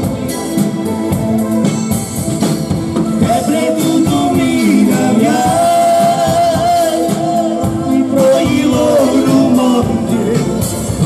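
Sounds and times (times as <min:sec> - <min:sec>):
band playing dance music: 0:00.0 - 0:11.0
man singing: 0:03.1 - 0:11.0.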